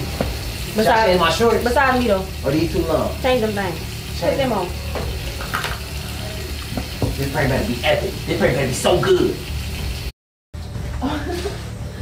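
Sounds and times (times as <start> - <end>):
shower water running: 0.0 - 10.1.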